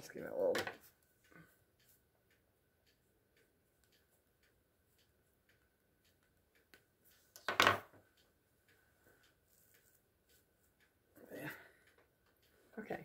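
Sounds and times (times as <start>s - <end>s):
faint regular ticking: 0.0s - 13.0s.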